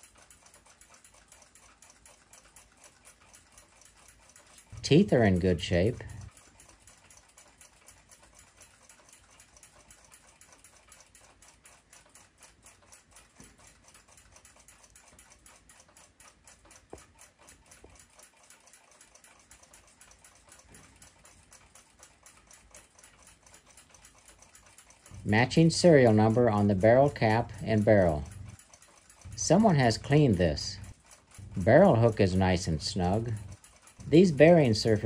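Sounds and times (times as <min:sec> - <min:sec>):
clock ticking: 0:00.0 - 0:35.0.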